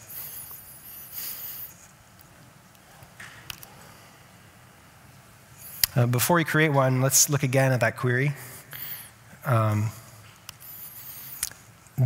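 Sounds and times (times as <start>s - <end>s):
breath: 0.0s - 1.9s, 8.3s - 9.2s, 10.0s - 11.6s
faint low hum: 0.0s - 12.0s
man talking: 5.9s - 8.6s, 9.4s - 10.0s.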